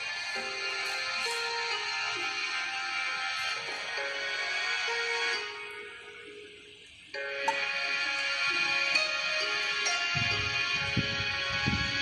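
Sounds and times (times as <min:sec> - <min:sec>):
slow gentle background music: 0:00.0 - 0:12.0.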